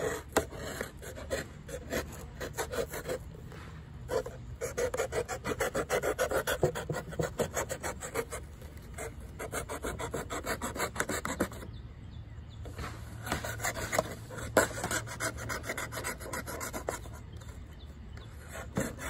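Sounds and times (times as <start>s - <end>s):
knife sawing through paper: 0.0s - 3.2s, 4.1s - 8.4s, 9.0s - 11.6s, 13.3s - 17.2s, 18.4s - 19.0s.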